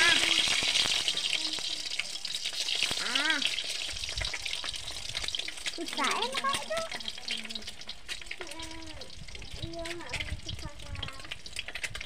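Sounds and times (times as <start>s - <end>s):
eggs sizzling in hot oil: 0.0s - 12.0s.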